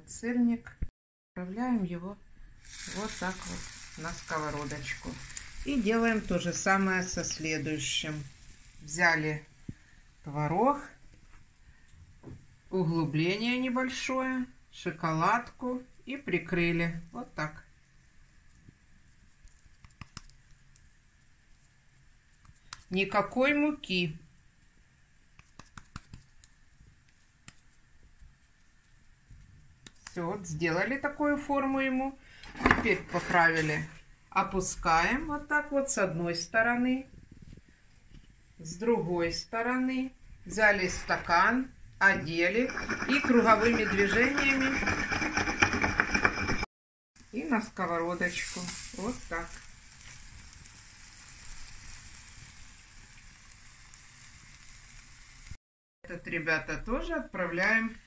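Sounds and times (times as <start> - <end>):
hands shaping moist dough: 18.4 - 23.5, 25.2 - 30.3
glass scraping in gritty bowl: 42.1 - 46.7.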